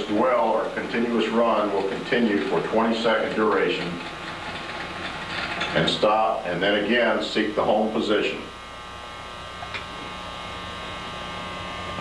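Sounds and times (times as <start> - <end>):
electric motor buzzing hum: 0.0 - 12.0.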